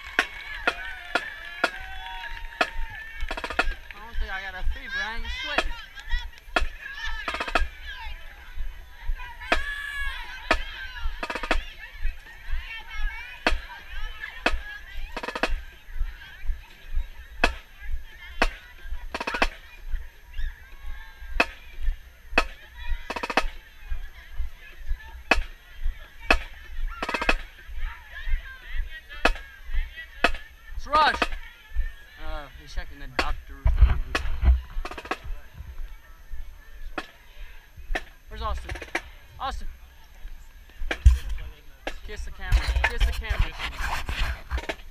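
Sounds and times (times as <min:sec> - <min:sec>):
marching drum cadence clicks: 0:00.0 - 0:08.0, 0:10.4 - 0:12.2, 0:13.4 - 0:15.8, 0:17.4 - 0:17.8, 0:18.4 - 0:19.7, 0:21.4 - 0:21.7, 0:22.4 - 0:23.7, 0:25.3 - 0:25.6, 0:26.3 - 0:27.6, 0:29.2 - 0:29.5, 0:30.2 - 0:31.4, 0:33.0 - 0:36.0, 0:37.9 - 0:44.9
crowd voices: 0:00.0 - 0:44.9.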